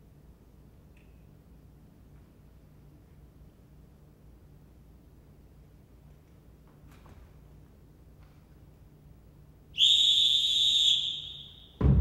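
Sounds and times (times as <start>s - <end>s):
long whistle blast: 9.8s - 11.8s
deep drum hit: 11.8s - 12.0s
music: 11.8s - 12.0s.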